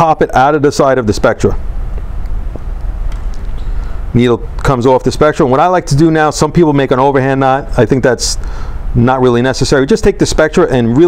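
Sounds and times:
low background hum: 0.0 - 11.0
faint hiss: 0.1 - 11.0.

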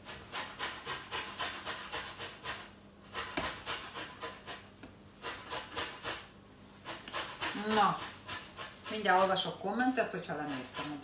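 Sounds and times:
hand grater scraping: 6.8 - 9.5, 10.1 - 11.0.

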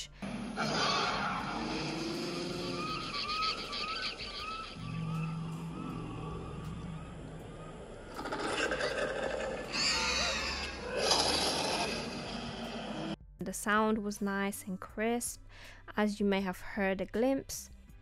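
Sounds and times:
film soundtrack music: 0.0 - 18.0.

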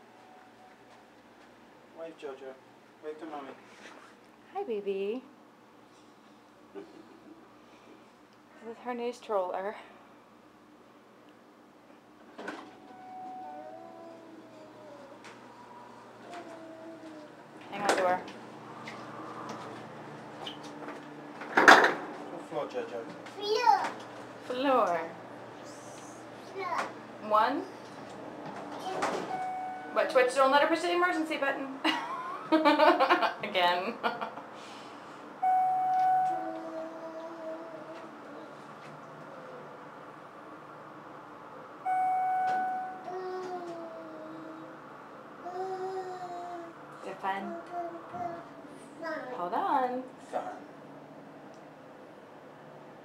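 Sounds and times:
elevator chime: 0.0 - 0.8, 12.7 - 13.8, 29.2 - 30.2, 35.4 - 36.6, 41.8 - 43.1
elevator hum: 12.2 - 53.0
elevator doors clattering shut: 28.8 - 30.0.

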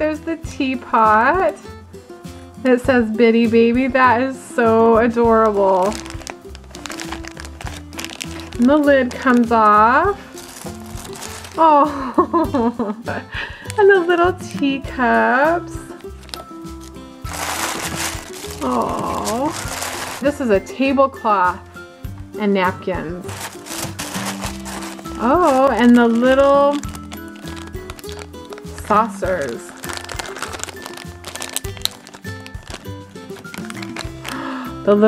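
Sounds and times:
background music: 0.0 - 35.0
tissue paper and packaging crinkling: 5.3 - 12.2, 15.6 - 20.5, 23.2 - 34.9.

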